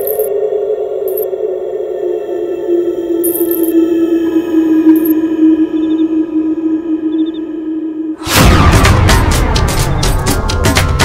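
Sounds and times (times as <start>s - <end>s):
eerie synthesized drone: 0.0s - 10.6s.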